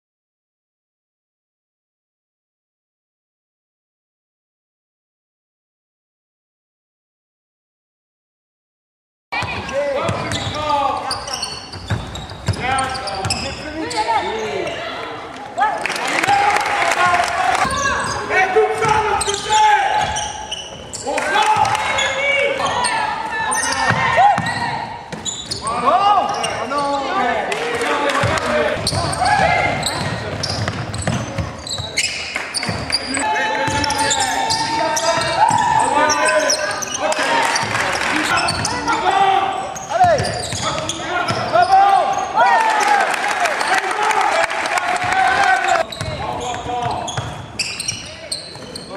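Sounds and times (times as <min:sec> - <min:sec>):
players calling out: 0:09.4 - 0:48.9
basketball bouncing on hardwood: 0:28.2 - 0:31.6.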